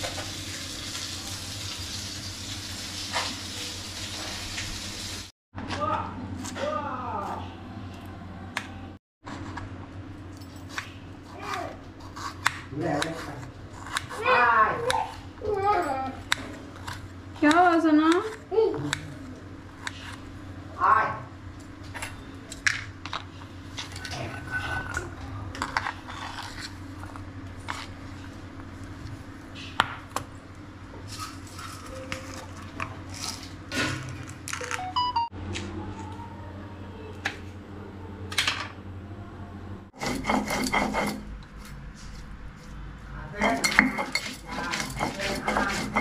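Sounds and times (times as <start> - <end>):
stone roller grinding on stone: 39.9 - 41.4, 43.3 - 46.0
food scraped into steel bowl: 43.4 - 46.0.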